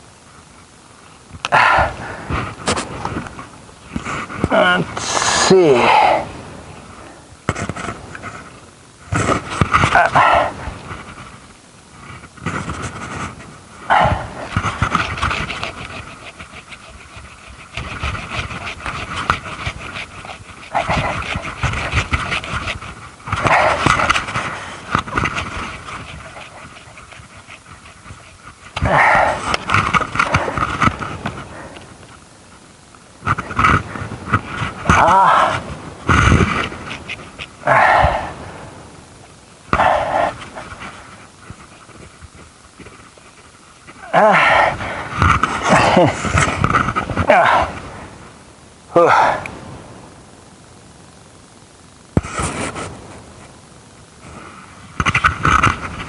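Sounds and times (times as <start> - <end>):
hand saw cutting wood: 14.6 - 22.8.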